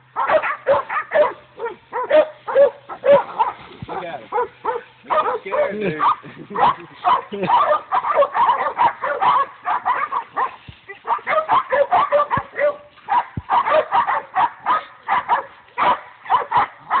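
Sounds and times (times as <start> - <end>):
dogs barking: 0.0 - 17.0.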